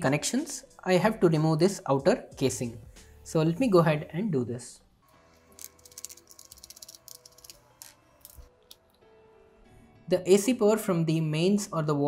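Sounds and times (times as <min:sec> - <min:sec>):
quiet background music: 0:00.0 - 0:12.0
plastic casing clicks and rattles: 0:05.6 - 0:08.5.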